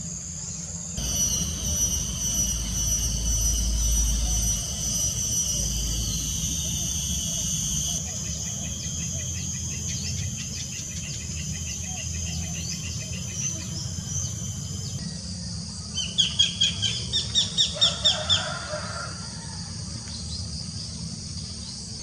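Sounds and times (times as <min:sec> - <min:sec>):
birds chirping: 0:01.0 - 0:15.0
sharp down-slurred bird calls: 0:01.0 - 0:15.0.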